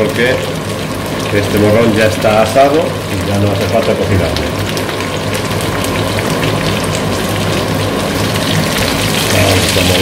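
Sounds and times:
vegetables sizzling in frying pan: 0:00.0 - 0:10.0.

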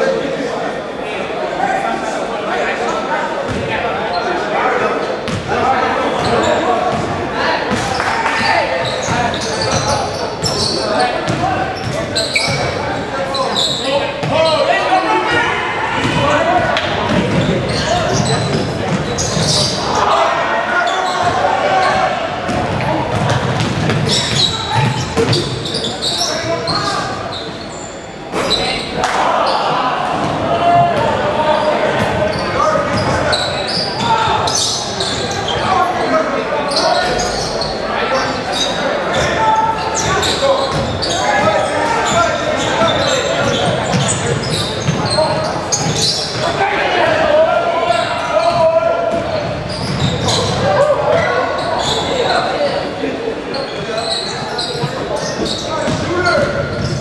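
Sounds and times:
voices and shouts: 0:00.0 - 0:27.7, 0:28.3 - 0:57.0.

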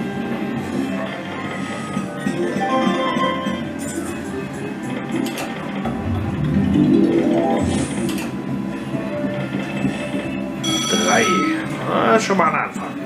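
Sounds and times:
slot machine reels spinning: 0:05.3 - 0:08.8
slot machine win jingle: 0:05.9 - 0:08.6, 0:10.6 - 0:11.7.

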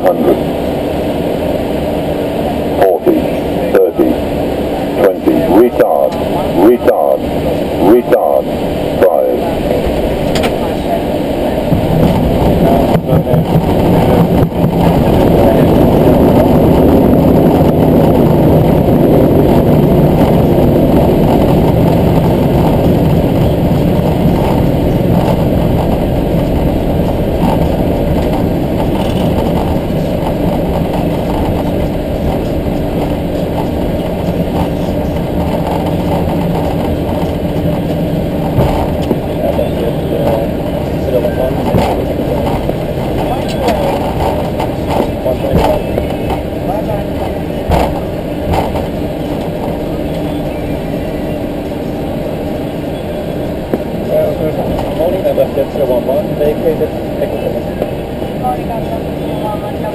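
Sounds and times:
jet engines roaring: 0:00.0 - 0:59.9
runway rumble: 0:00.0 - 0:59.9.

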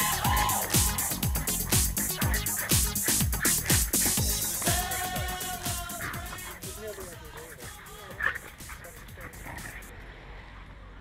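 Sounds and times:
music: 0:00.0 - 0:09.9
dog yelping: 0:00.1 - 0:09.9.

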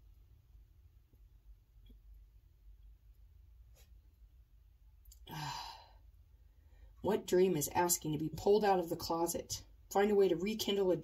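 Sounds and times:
woman sighing: 0:05.2 - 0:06.0.

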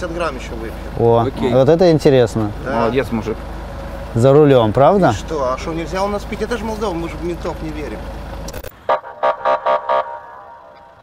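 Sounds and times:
police siren horn blasts: 0:08.8 - 0:11.0.

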